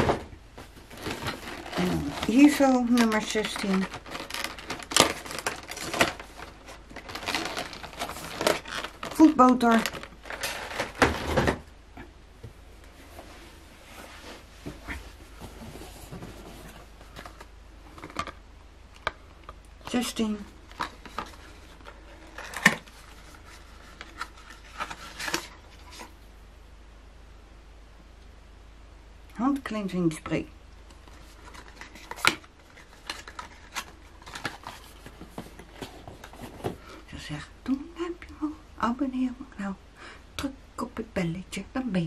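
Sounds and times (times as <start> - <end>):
cardboard packaging rustling: 0.0 - 11.7, 12.9 - 18.4, 19.8 - 26.2, 30.9 - 37.0.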